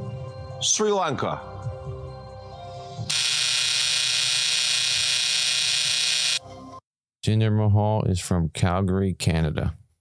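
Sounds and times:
loud buzzer: 3.1s - 6.4s.

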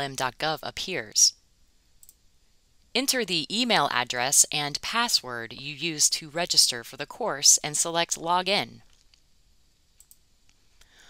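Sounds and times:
faint clicks: 2.0s - 2.2s, 10.0s - 10.9s.

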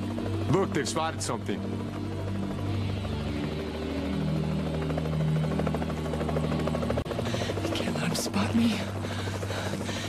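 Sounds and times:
helicopter rotor chop: 0.0s - 10.0s.

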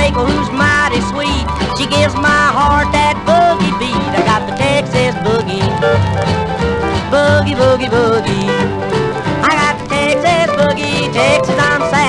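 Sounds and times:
country boogie band playing: 0.0s - 12.0s.

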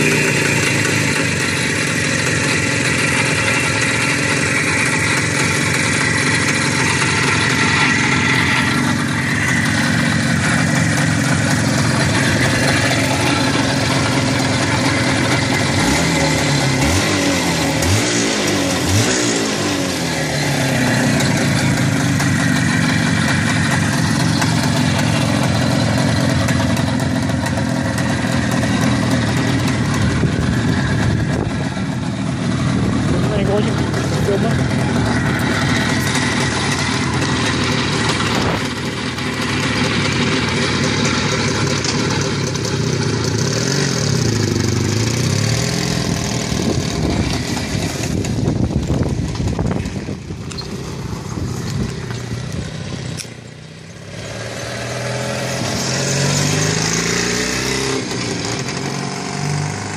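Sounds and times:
motorcycle engine idling and revving: 0.0s - 59.9s.

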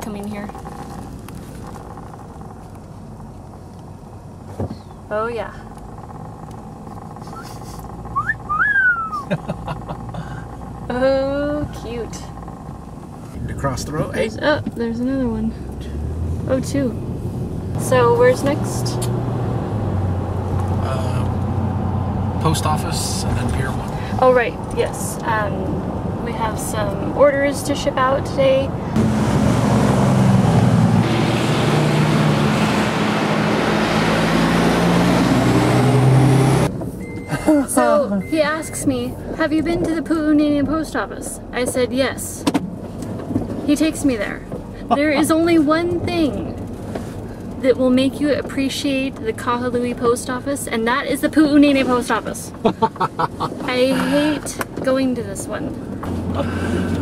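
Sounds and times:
low mechanical drone: 0.0s - 36.7s
car engine idling: 0.0s - 57.0s
rushing noise: 28.8s - 36.6s.

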